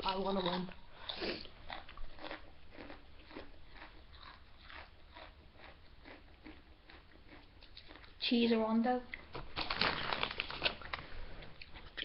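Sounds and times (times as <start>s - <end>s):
person chewing crisp chip: 0.0s - 8.2s, 9.1s - 12.0s.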